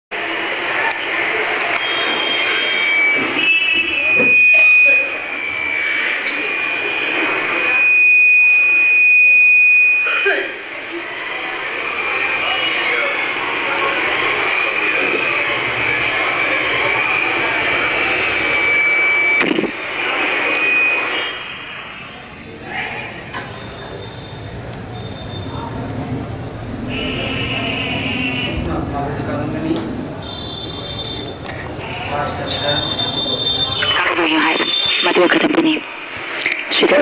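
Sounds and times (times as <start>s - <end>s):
voices in a crowded room: 0.1s - 37.0s
loud rushing noise: 10.6s - 37.0s.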